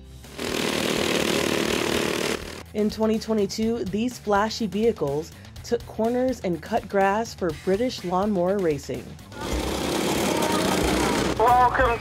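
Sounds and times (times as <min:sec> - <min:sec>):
lawnmower engines at high revs: 0:00.0 - 0:02.7, 0:09.3 - 0:11.8.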